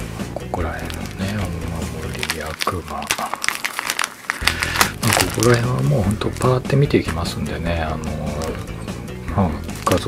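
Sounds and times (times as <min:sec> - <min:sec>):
stickers crinkling and clicking: 0:00.6 - 0:08.8, 0:09.6 - 0:10.0.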